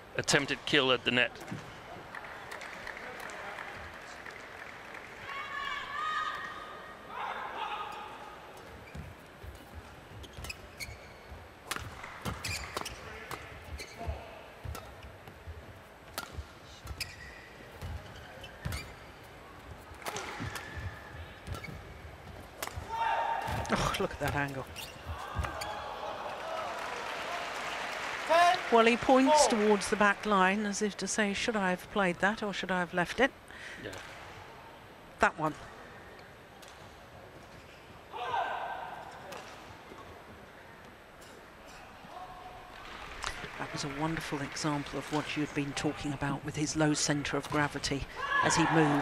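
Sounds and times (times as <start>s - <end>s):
shoes squeaking on court: 8.6s - 25.9s
racket hitting shuttlecock: 11.6s - 14.0s, 16.1s - 17.1s, 20.0s - 21.8s, 22.5s - 23.8s
crowd noise: 22.2s - 31.4s.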